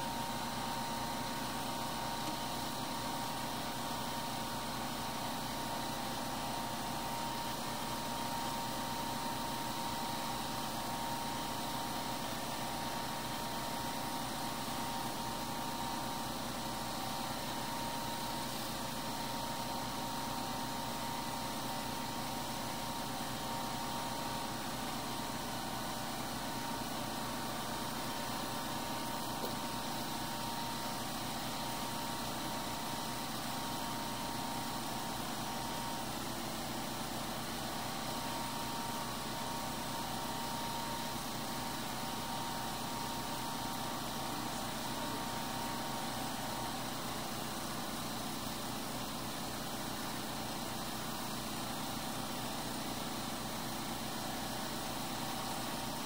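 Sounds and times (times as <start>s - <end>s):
mechanical hum and hiss: 0.0s - 56.0s.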